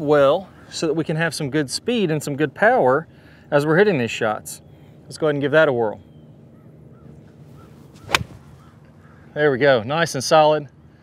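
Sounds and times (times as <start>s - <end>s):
club striking golf ball: 7.6s - 8.7s
golf club swish: 7.6s - 8.7s.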